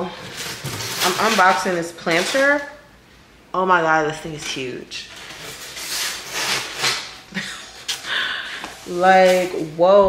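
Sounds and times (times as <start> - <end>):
packaging rubbing and scraping: 0.1 - 2.6, 5.0 - 8.0.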